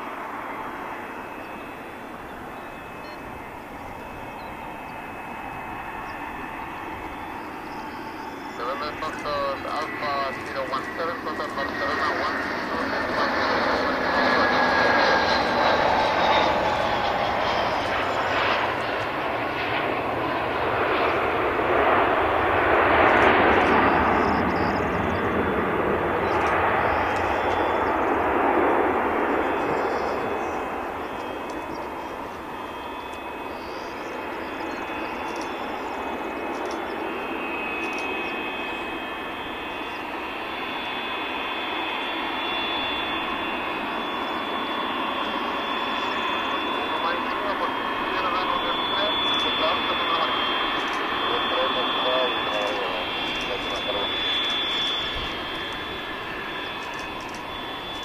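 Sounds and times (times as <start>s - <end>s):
jet engines with high whine: 0.0s - 58.0s.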